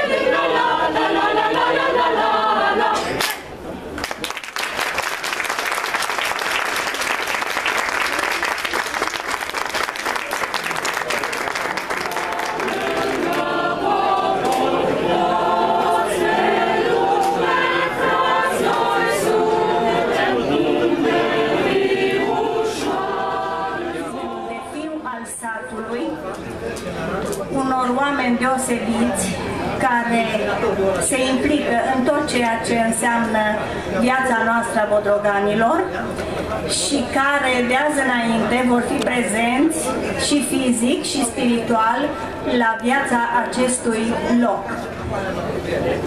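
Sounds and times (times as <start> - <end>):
choir singing a cappella: 0.0 - 3.2, 12.0 - 25.8
applause: 4.0 - 13.5.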